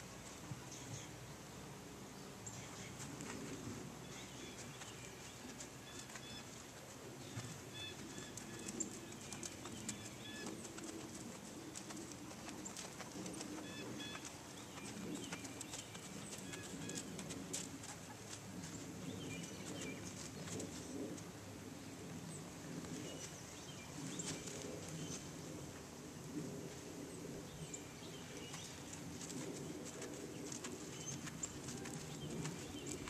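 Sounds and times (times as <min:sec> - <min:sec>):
low background noise: 0:00.0 - 0:33.0
birds chirping: 0:02.1 - 0:21.2, 0:27.0 - 0:33.0.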